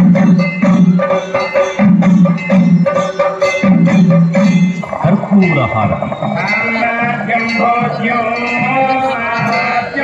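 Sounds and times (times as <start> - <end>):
instrumental accompaniment: 0.0 - 9.8.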